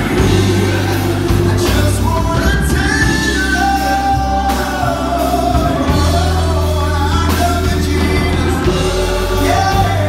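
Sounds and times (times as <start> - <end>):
accompaniment with heavy bass: 0.0 - 10.0
person singing gospel song: 0.0 - 10.0.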